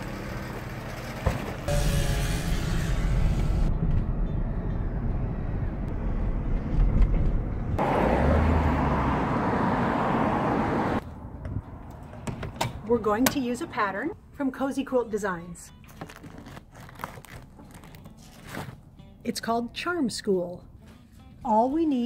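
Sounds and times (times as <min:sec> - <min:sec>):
car engine and road rumble: 0:00.0 - 0:14.3.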